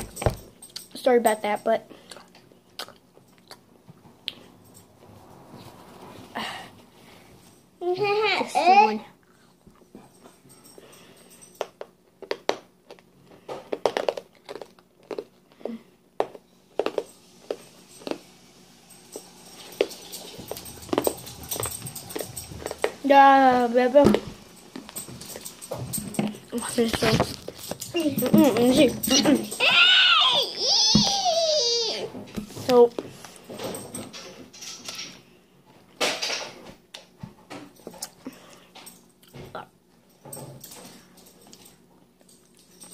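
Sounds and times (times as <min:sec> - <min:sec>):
child's mouth clicks and lip smacks: 0:02.0 - 0:04.4
soft breathing: 0:05.6 - 0:07.6.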